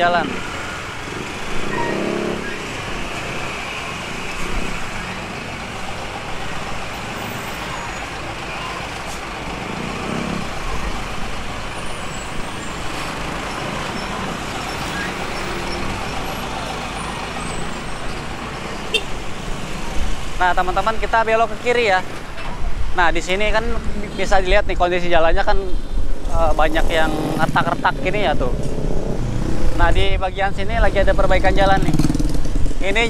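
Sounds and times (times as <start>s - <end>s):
motorcycle and truck engines idling: 0.0s - 22.6s.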